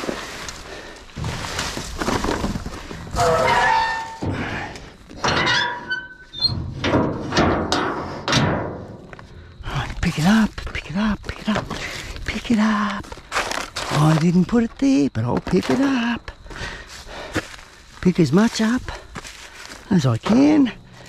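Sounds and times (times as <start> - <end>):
knocks and scraping on steel: 1.2 - 9.3
metallic ringing tones: 3.2 - 4.3, 5.2 - 6.6.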